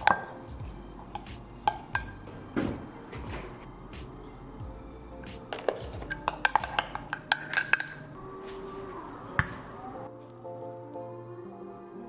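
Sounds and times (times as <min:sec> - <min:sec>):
spoon clinking against glass jar: 0:00.0 - 0:02.3, 0:05.5 - 0:08.2
background music: 0:00.0 - 0:12.0.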